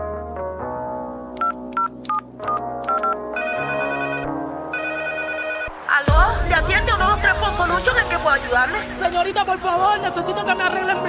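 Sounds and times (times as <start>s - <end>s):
electronic background music: 0.4s - 11.0s
telephone ringtone: 1.4s - 5.8s.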